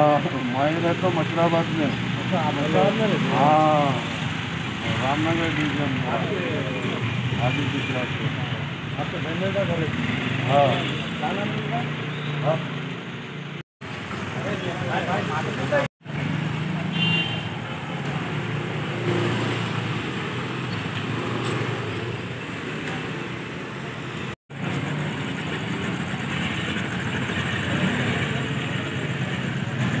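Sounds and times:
car engines passing: 0.0s - 30.0s
motorcycle engines passing: 0.0s - 30.0s.

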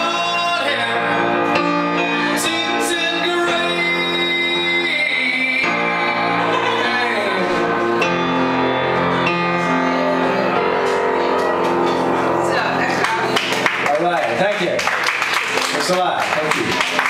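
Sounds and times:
piano chords ringing: 0.0s - 17.0s
audience applause: 12.9s - 17.0s.

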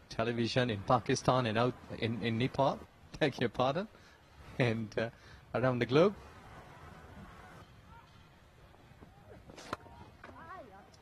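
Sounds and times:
faint distant voices: 0.1s - 11.0s.

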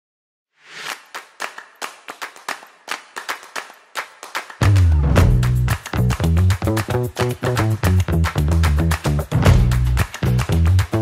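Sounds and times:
sharp reverberant claps: 0.8s - 11.0s.

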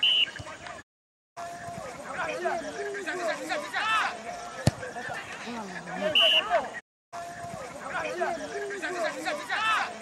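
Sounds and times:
voices calling and shouting: 1.4s - 10.0s.

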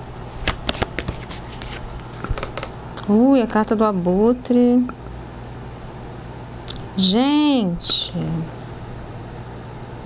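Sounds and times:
low background hum with hiss: 0.0s - 10.0s.

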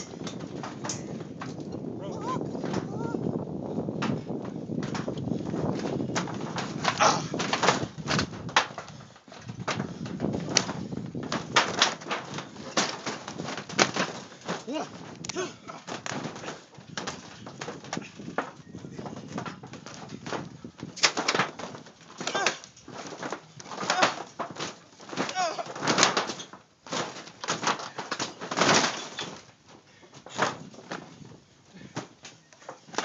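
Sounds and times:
trampoline thumping and squeaking: 0.0s - 33.0s.

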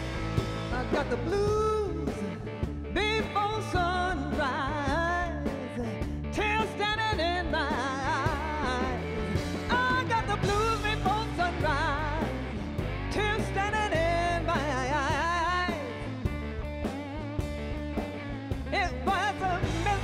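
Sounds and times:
drums: 0.0s - 20.0s
electric bass: 0.0s - 20.0s
lap steel guitar: 0.0s - 20.0s
woman singing: 0.7s - 16.2s, 18.7s - 20.0s.

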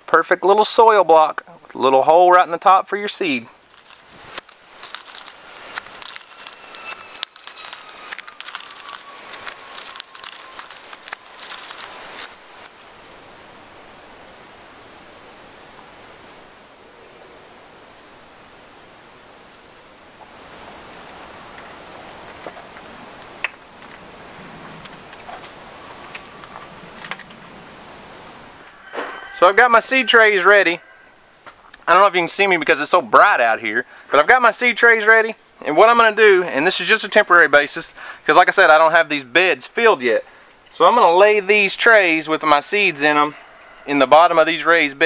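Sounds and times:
faint steady hiss: 0.0s - 45.0s
gritty crackling and scraping soil: 2.9s - 13.3s, 21.5s - 27.8s.

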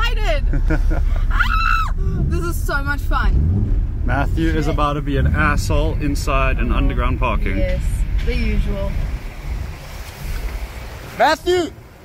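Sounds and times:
car engine rumble from inside: 0.0s - 12.0s
wind buffeting microphone: 1.9s - 11.1s.

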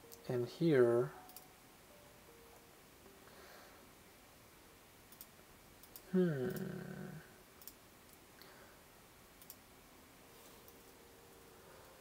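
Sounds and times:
faint computer clicks: 1.2s - 1.5s, 5.1s - 6.6s, 9.4s - 9.6s.

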